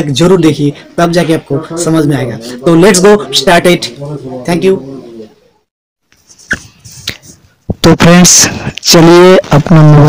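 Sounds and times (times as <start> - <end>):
man talking: 0.0 - 5.4.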